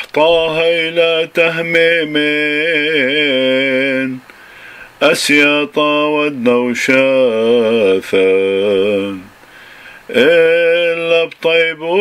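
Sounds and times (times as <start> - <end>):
man chanting a hymn: 0.0 - 4.2, 5.0 - 9.3, 10.1 - 12.0.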